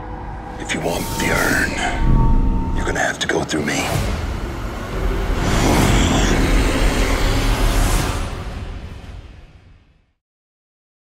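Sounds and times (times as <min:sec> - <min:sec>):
loud deep rumble: 0:00.0 - 0:09.4.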